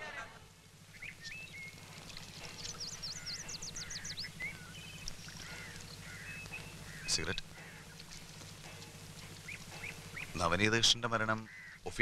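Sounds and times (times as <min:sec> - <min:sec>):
low steady hum: 0:00.0 - 0:12.0
birds whistling calls: 0:00.9 - 0:10.5, 0:11.4 - 0:11.9.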